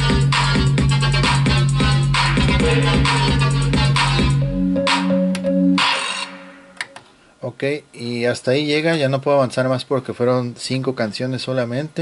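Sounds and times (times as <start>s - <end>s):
music with heavy bass: 0.0s - 6.8s.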